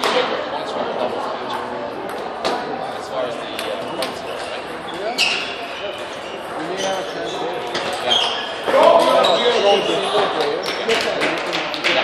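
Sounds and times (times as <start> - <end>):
balls bouncing on tables: 7.6 - 12.0
table tennis balls clicking: 10.2 - 12.0.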